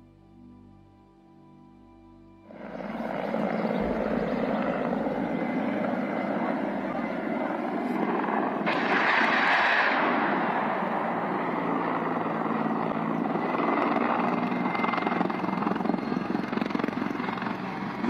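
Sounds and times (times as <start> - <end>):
high-pitched whine: 0.0 - 18.0
helicopter rotor and engine rumble: 2.3 - 18.0
rushing burst: 8.6 - 11.4.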